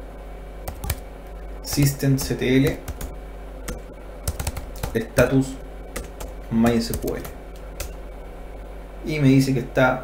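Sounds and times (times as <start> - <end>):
typing on computer keyboard: 0.7 - 1.0, 1.7 - 5.0, 6.0 - 8.0.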